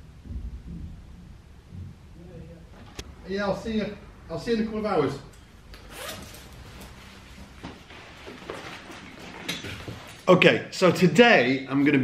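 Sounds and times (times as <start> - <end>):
fabric jacket rustling: 5.8 - 10.3.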